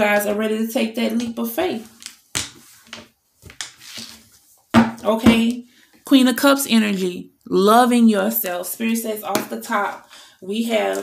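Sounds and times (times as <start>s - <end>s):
cards sliding rustle: 1.9s - 4.5s.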